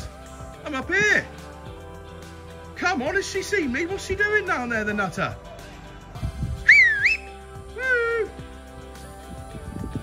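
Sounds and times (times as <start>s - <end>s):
background music: 0.0s - 10.0s
man whistling loudly: 6.6s - 8.3s.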